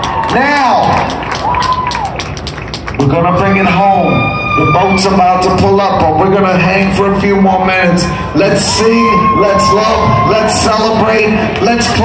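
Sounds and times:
crowd clapping and cheering: 0:00.0 - 0:05.9, 0:08.6 - 0:12.0
person whooping: 0:00.1 - 0:02.2, 0:03.4 - 0:05.2, 0:08.6 - 0:11.6.

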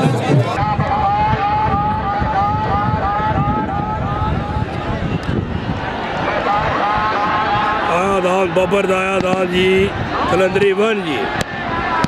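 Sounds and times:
crowd rumble: 0:00.0 - 0:12.0
wind noise: 0:00.0 - 0:12.0.

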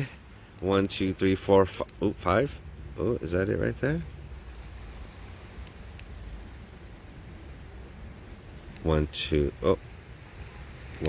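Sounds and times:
distant surf: 0:00.0 - 0:11.0
faint ticks: 0:05.4 - 0:06.2.

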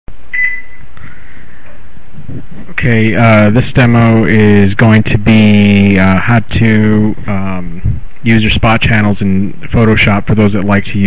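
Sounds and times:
low hum and hiss: 0:00.1 - 0:11.0
short high electronic beep: 0:00.3 - 0:00.9.

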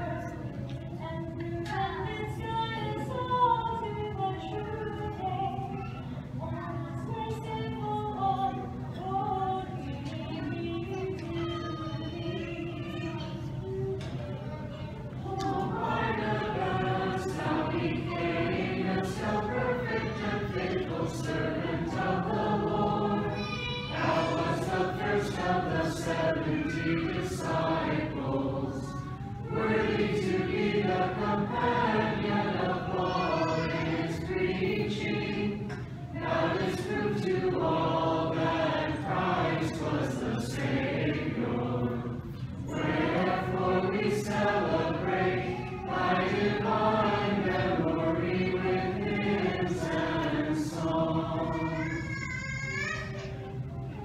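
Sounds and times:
choir singing unaccompanied hymn: 0:00.0 - 0:54.0.

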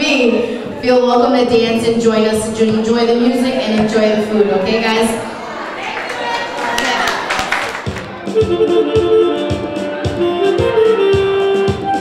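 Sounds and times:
people clapping: 0:05.7 - 0:08.4
electronic keyboard chords: 0:08.0 - 0:12.0.

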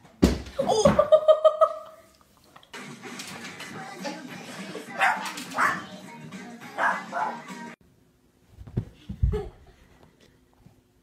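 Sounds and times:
background music: 0:02.7 - 0:07.8
dog barking: 0:05.0 - 0:05.9, 0:06.8 - 0:07.4.

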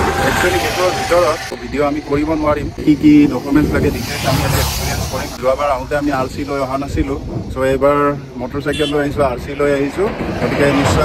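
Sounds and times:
man talking: 0:00.0 - 0:11.0
vehicle passing by: 0:02.8 - 0:05.6.

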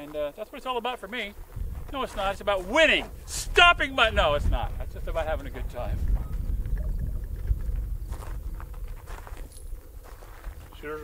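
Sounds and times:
wind buffeting microphone: 0:01.1 - 0:11.0.

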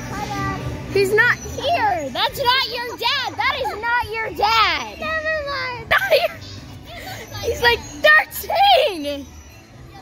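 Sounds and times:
children chattering and squealing: 0:00.0 - 0:10.0.

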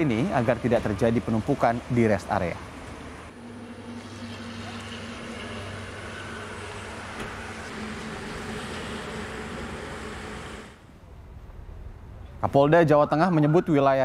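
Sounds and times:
traffic engines running: 0:00.0 - 0:12.5.

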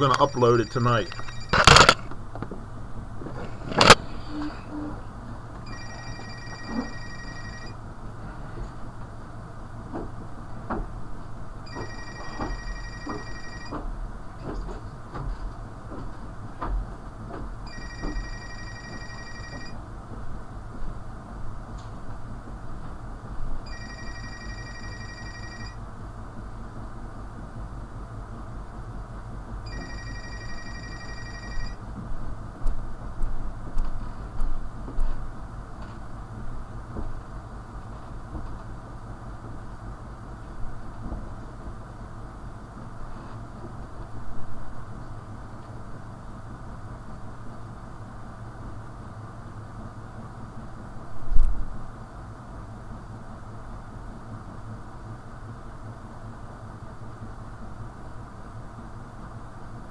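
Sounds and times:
electronic telephone ringing: 0:00.0 - 0:02.0, 0:05.7 - 0:07.8, 0:11.7 - 0:13.8, 0:17.7 - 0:19.8, 0:23.6 - 0:25.8, 0:29.7 - 0:31.8
steady low hum: 0:00.0 - 0:59.9.

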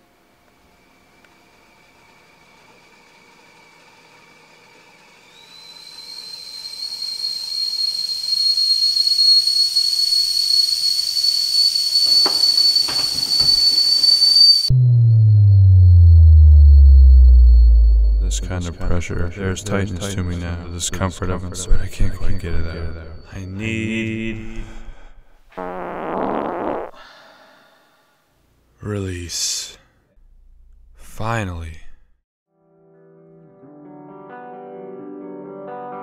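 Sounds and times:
kettle whistling: 0:01.6 - 0:26.9
kettle hissing: 0:05.2 - 0:14.7
deep tone sliding downward: 0:12.1 - 0:25.0.

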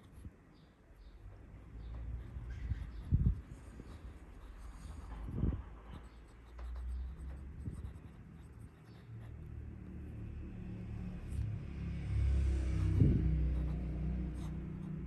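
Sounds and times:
low steady rumble: 0:01.3 - 0:15.0
pen nib scratching paper: 0:02.0 - 0:09.5, 0:12.6 - 0:15.0.

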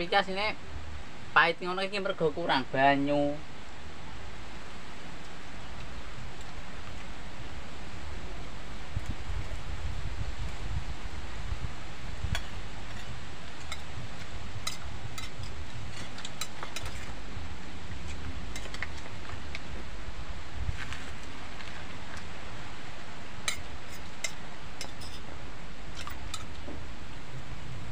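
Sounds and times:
wind buffeting microphone: 0:08.2 - 0:21.6
spoons clinking on plates: 0:14.6 - 0:17.1, 0:23.4 - 0:25.2.

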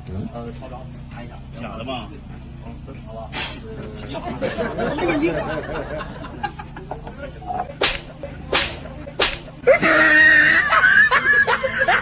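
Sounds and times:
whip-like cracks: 0:07.8 - 0:09.6.

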